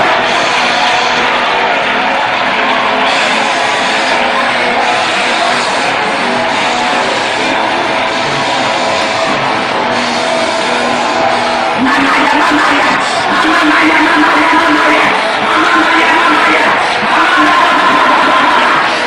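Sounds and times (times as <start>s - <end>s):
crowd voices: 0.0s - 19.0s
music: 0.0s - 19.0s.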